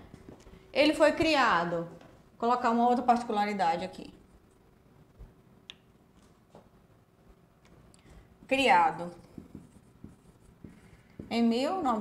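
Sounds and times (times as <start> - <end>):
marker writing on whiteboard: 8.5 - 12.0.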